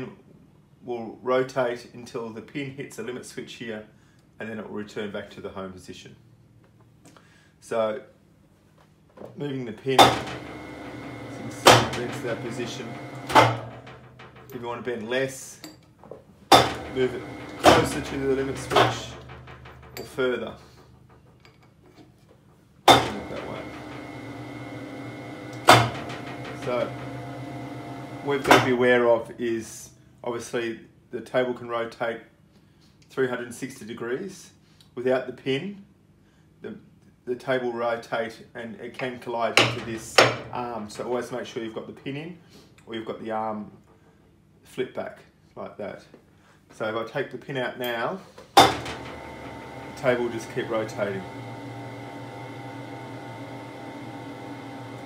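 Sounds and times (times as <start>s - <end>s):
machine motor humming: 10.0s - 14.6s, 16.5s - 21.1s, 22.9s - 28.8s, 48.7s - 55.0s
sharp metallic clunk: 10.0s - 14.8s, 16.5s - 21.7s, 22.9s - 27.2s, 28.4s - 29.0s, 48.6s - 49.2s
sharp metallic clank: 10.0s - 14.9s, 16.5s - 21.6s, 22.9s - 24.2s, 25.5s - 27.0s.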